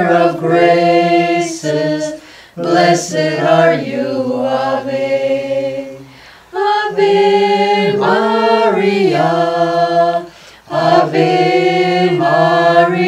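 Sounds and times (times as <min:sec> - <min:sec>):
people singing a hymn unaccompanied: 0:00.0 - 0:13.0.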